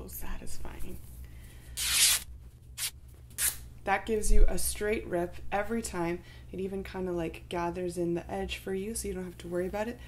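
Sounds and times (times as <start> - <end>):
fabric ripping: 1.8 - 3.6.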